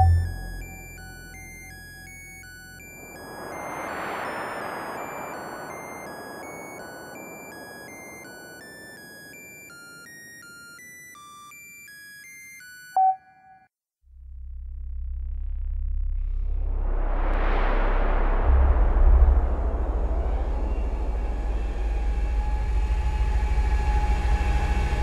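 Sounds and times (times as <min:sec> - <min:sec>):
computer-like bleeps: 0:00.0 - 0:01.7, 0:12.9 - 0:13.6
hissing swell: 0:02.8 - 0:09.6.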